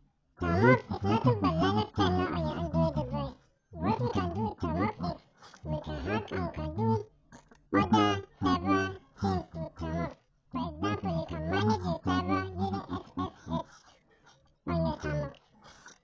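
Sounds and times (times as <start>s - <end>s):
person talking: 0.4s - 16.0s.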